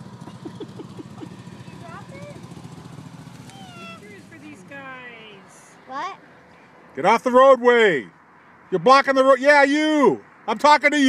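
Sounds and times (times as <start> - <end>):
car engine running: 0.0 - 6.8
people's voices: 0.3 - 2.5, 3.4 - 6.2.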